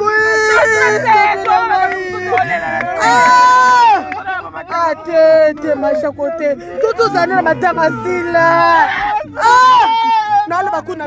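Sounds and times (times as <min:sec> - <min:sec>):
woman wailing and sobbing: 0:00.0 - 0:04.1, 0:06.2 - 0:10.8.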